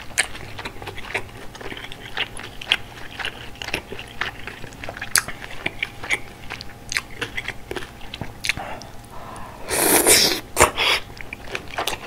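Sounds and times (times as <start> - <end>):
chewing with crunching: 0.0 - 12.0.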